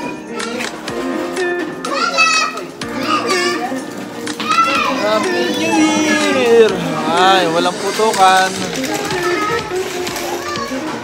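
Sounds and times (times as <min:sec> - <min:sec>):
background music: 0:00.0 - 0:11.0
children chattering: 0:00.0 - 0:11.0.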